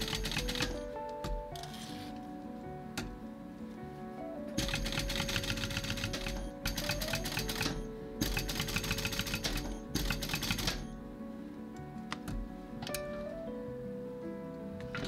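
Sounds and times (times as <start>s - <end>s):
sewing machine stitching: 0.0s - 1.0s, 4.6s - 11.0s.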